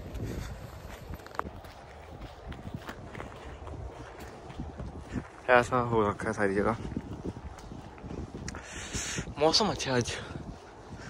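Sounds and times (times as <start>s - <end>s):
footsteps on slushy snow: 0.0s - 11.0s
wind rumbling on microphone: 0.0s - 11.0s.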